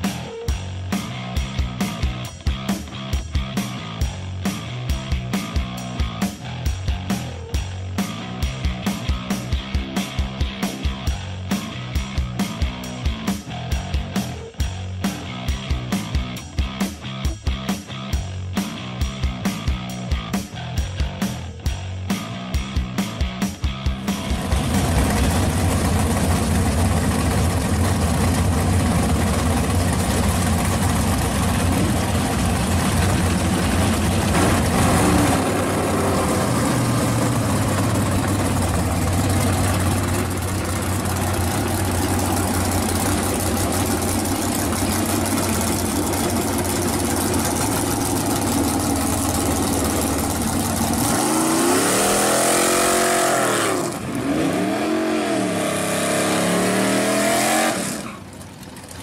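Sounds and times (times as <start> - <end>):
car engines idling: 0.0 - 59.0
engine revving hard: 29.9 - 58.3.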